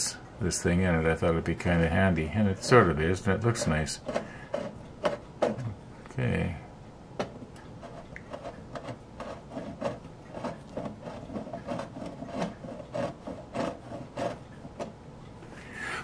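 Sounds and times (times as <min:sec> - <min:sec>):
bevelling tool scraping plastic: 0:02.6 - 0:05.7, 0:07.8 - 0:15.0.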